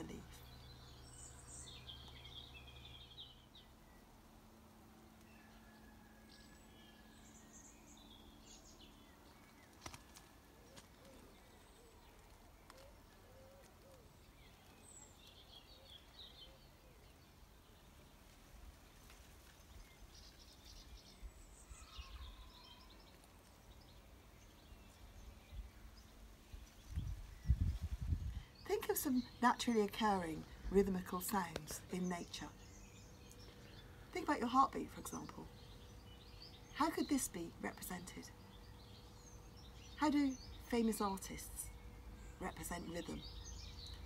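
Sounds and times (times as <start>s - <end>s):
small birds chirping: 0.0s - 44.0s
low outdoor rumble: 6.4s - 44.0s.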